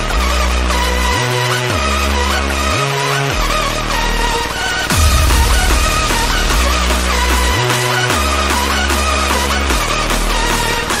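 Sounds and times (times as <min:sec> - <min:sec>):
hardstyle electronic dance music: 0:00.1 - 0:11.0
deep synth bass sliding in pitch: 0:04.9 - 0:08.4.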